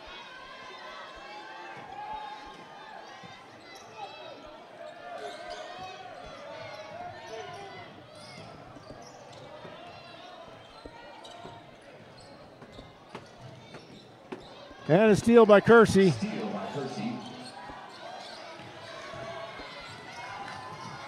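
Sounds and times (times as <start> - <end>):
murmur of spectators' voices: 0.0 - 21.0.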